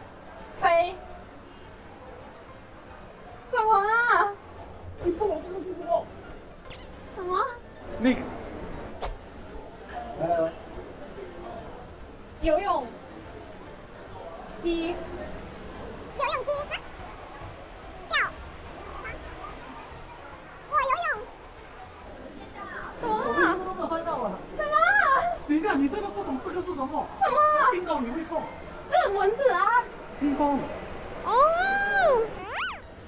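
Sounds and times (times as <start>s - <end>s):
cat-like meow: 32.4s - 32.9s.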